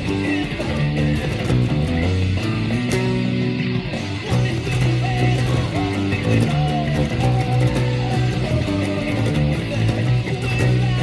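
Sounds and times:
fast punk rock band: 0.0 - 11.0
picked electric bass line: 0.0 - 11.0.

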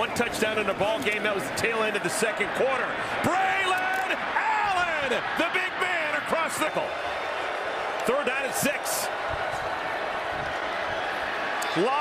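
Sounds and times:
commentator speaking: 0.0 - 6.9, 8.1 - 9.1
stadium crowd noise: 0.0 - 12.0.

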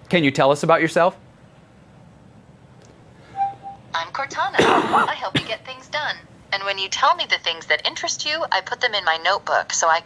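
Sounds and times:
soft two-part electronic chime: 3.4 - 3.9
synthetic female voice: 4.0 - 10.0.

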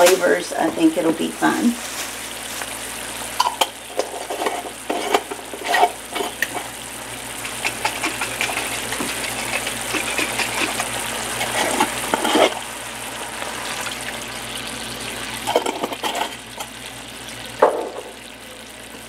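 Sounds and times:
sauce bubbling and sizzling: 1.2 - 19.0.

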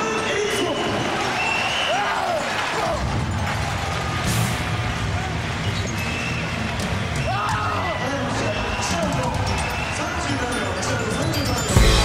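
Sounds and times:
arena crowd din: 0.0 - 12.0.

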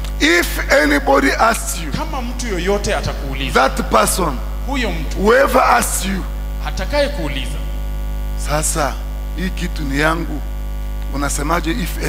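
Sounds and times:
low electrical hum: 0.0 - 12.0
man speaking: 0.2 - 7.8, 8.4 - 10.5, 11.1 - 12.0.

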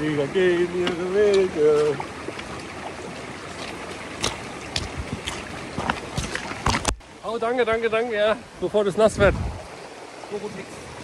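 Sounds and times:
forest stream running: 0.0 - 11.0
boots stepping on stone and gravel: 0.8 - 7.0.

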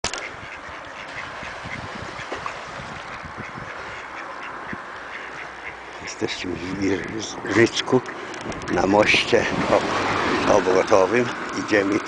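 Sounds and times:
ducks quacking: 0.1 - 10.9.

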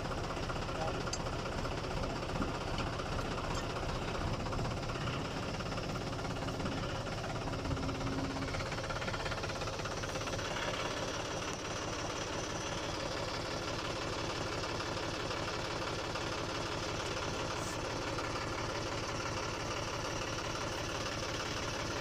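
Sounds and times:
diesel tractor engine idling: 0.0 - 22.0.

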